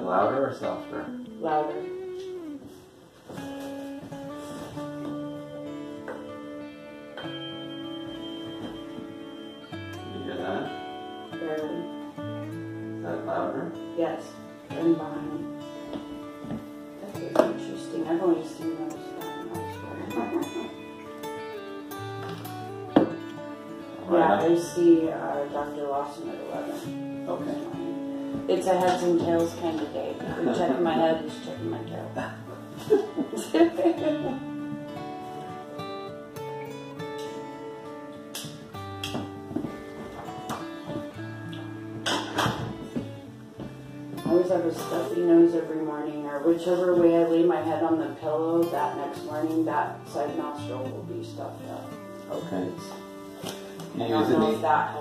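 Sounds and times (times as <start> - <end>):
guitar: 0.0 - 55.0.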